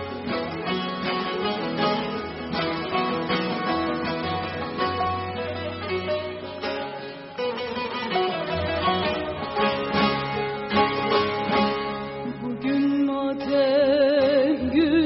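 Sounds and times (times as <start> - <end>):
sharp strummed strokes: 0.0 - 13.8
long-necked lute plucked melody: 0.0 - 15.0.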